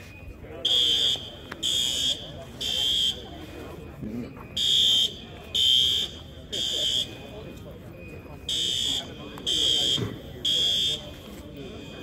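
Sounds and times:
fire alarm horn blasts: 0.6s - 3.3s, 4.6s - 7.5s, 8.5s - 12.0s.

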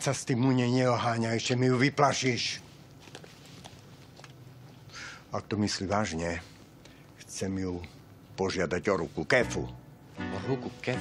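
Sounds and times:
soft rustle: 2.4s - 4.9s.

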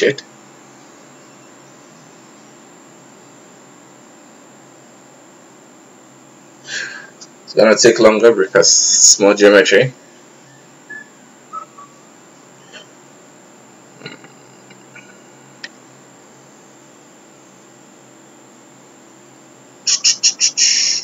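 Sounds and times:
rapid loud high chirps: 10.4s - 12.8s, 19.8s - 21.0s.

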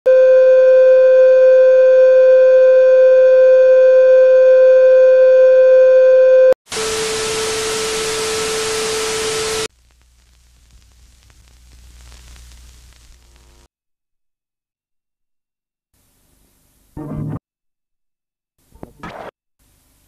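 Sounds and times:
tv static hiss: 6.7s - 13.7s.

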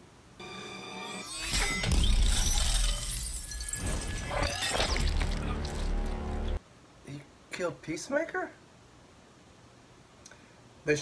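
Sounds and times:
debris crashing and shattering: 1.5s - 6.6s.

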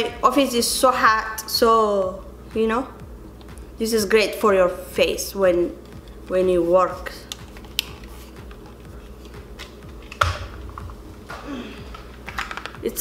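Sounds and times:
plastic fan and box clicking: 7.2s - 10.9s, 11.9s - 12.8s.

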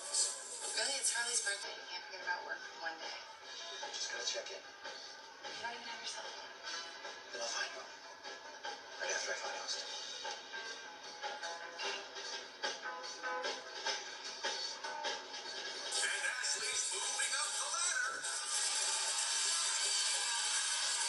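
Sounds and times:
cartoon background music: 6.3s - 21.0s.

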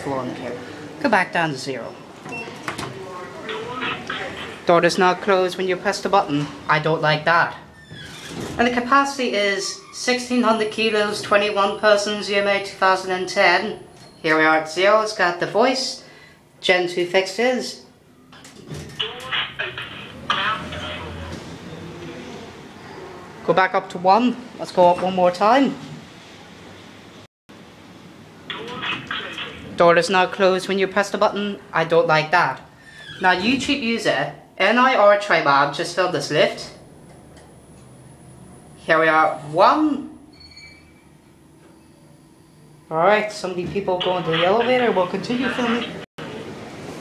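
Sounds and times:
elevator voice announcement: 0.0s - 7.7s, 8.6s - 16.0s, 18.8s - 22.2s, 28.4s - 37.0s, 42.8s - 46.1s.

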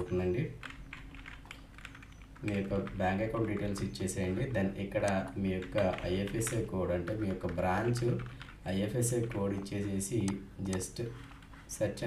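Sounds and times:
computer keyboard keystrokes: 0.0s - 11.7s.

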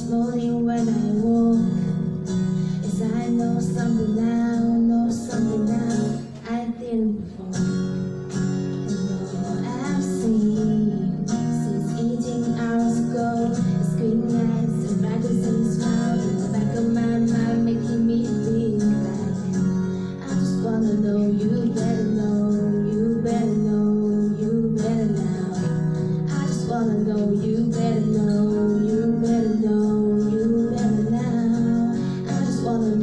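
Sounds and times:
woman singing a pop ballad: 0.0s - 8.1s, 8.9s - 33.0s
strummed acoustic guitar: 0.0s - 33.0s.

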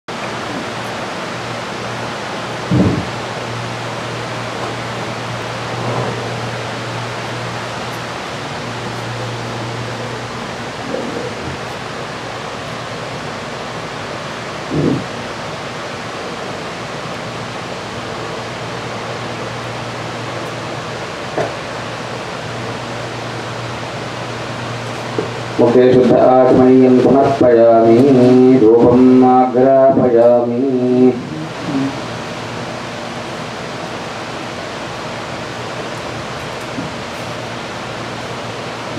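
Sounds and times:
steady rushing noise: 0.1s - 38.9s
low hum: 0.2s - 27.3s.

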